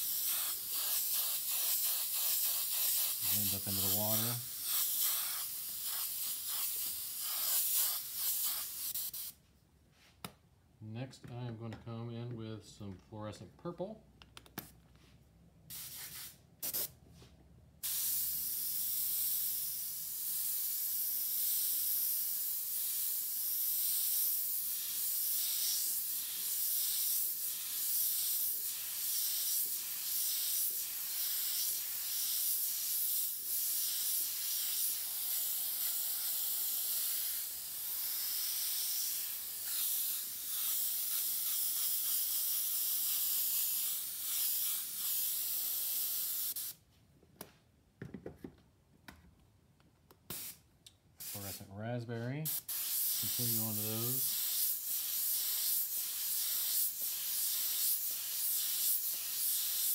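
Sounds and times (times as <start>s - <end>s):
airbrush spraying hiss: 0.0s - 9.4s, 15.7s - 16.9s, 17.8s - 46.8s, 50.3s - 50.6s, 51.2s - 51.7s, 52.4s - 59.9s.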